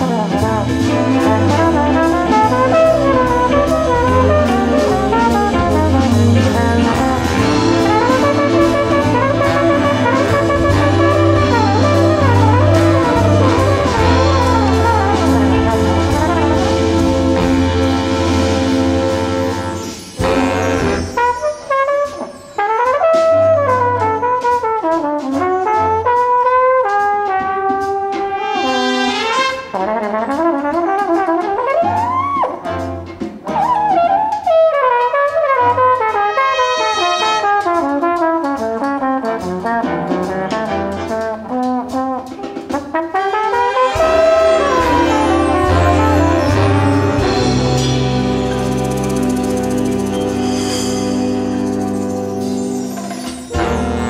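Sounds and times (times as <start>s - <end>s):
drums and rhythm section: 0.0s - 54.0s
jazz big band brass chord: 0.0s - 54.0s.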